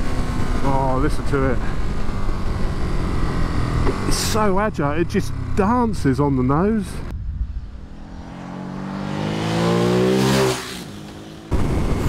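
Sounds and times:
low wind rumble: 0:00.0 - 0:10.2
motorcycle accelerating past: 0:07.7 - 0:11.6.

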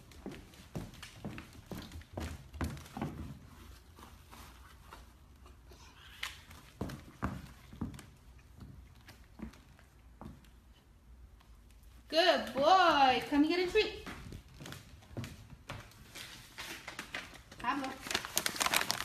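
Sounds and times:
puppy footsteps clicking on hard floor: 0:00.0 - 0:03.8, 0:14.0 - 0:19.0
person footsteps on hard floor: 0:00.0 - 0:05.5, 0:06.5 - 0:10.7, 0:13.8 - 0:17.6.

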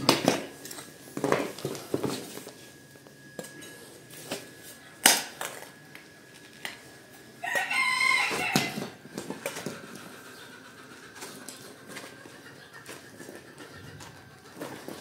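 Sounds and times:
rooster crowing: 0:07.4 - 0:09.0.

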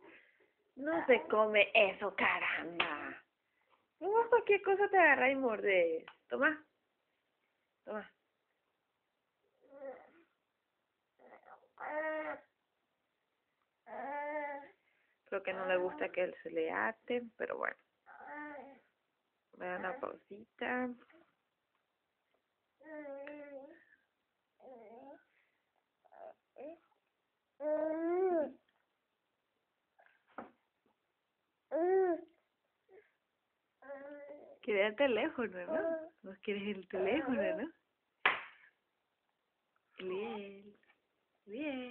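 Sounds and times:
baby whining: 0:09.6 - 0:10.3, 0:11.2 - 0:12.6, 0:13.8 - 0:14.8, 0:18.0 - 0:18.9, 0:22.8 - 0:23.8, 0:24.6 - 0:25.3, 0:26.0 - 0:27.0, 0:27.6 - 0:28.6, 0:31.7 - 0:33.1, 0:33.8 - 0:34.6, 0:35.7 - 0:36.2.

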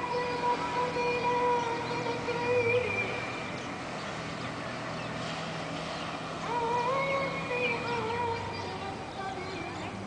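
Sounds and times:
jet ski engine droning: 0:00.0 - 0:10.0.

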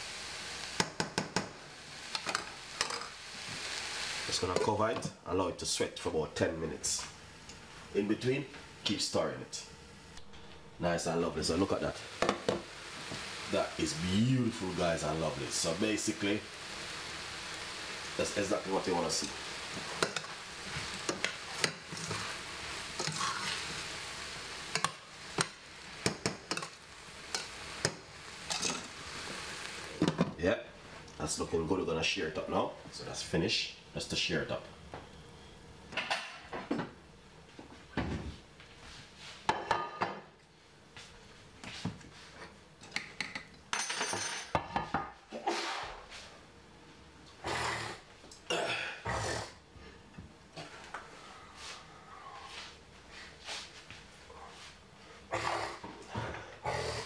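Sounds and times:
vegetables sizzling in a pan: 0:00.0 - 0:34.6
metal spoon scraping a pan: 0:23.0 - 0:23.7
pots and utensils clinking: 0:24.7 - 0:29.0, 0:43.2 - 0:44.8.

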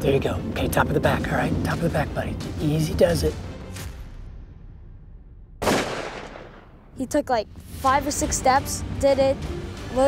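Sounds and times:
rifle shot: 0:05.6 - 0:06.8.

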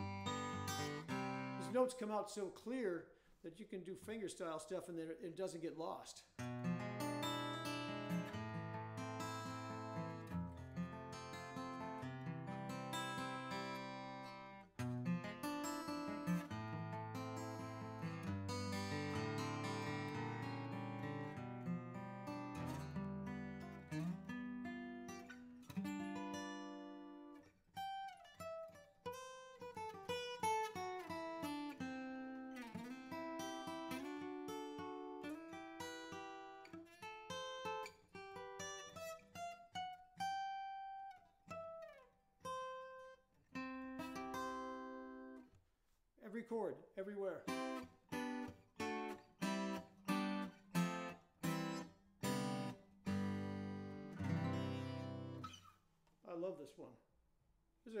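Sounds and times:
fingerstyle acoustic guitar: 0:00.0 - 0:02.2, 0:06.4 - 0:45.6, 0:47.4 - 0:55.8.

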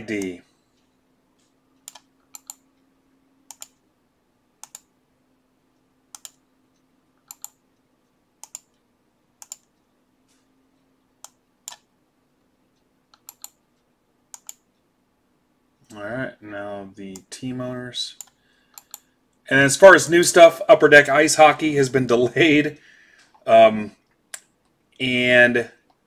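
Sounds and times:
faint low hum: 0:00.0 - 0:26.0
mouse and keyboard clicks: 0:01.4 - 0:02.6, 0:03.5 - 0:03.8, 0:04.6 - 0:04.9, 0:06.1 - 0:06.4, 0:07.2 - 0:07.6, 0:08.4 - 0:08.8, 0:09.4 - 0:09.7, 0:11.2 - 0:11.9, 0:13.1 - 0:13.6, 0:14.3 - 0:14.6, 0:18.2 - 0:19.1.

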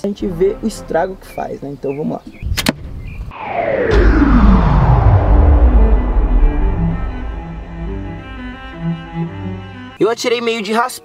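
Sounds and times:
low sustained string notes: 0:00.0 - 0:02.4, 0:03.9 - 0:10.0
deep bass rumble: 0:00.2 - 0:10.0
falling pitch sweep: 0:02.4 - 0:10.0.

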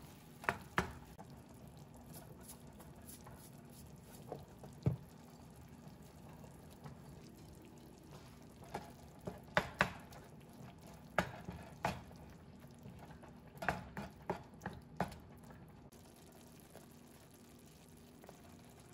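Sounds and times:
spatula stirring food in pan: 0:00.0 - 0:07.0, 0:08.0 - 0:15.3
spatula knocking against pan: 0:08.8 - 0:10.2, 0:11.1 - 0:12.1, 0:13.6 - 0:15.2.

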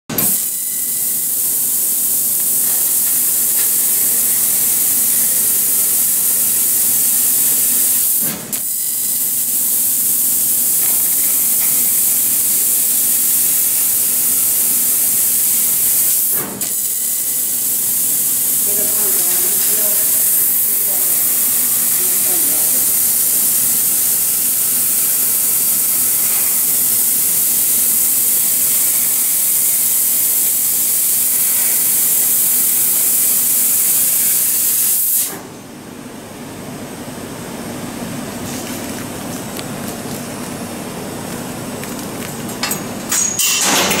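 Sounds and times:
laser cutter gas jet hiss: 0:00.1 - 0:35.4.

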